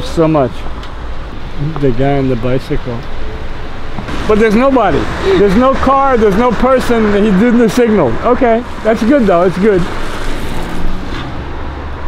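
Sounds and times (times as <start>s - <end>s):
car passing by: 3.8s - 12.0s.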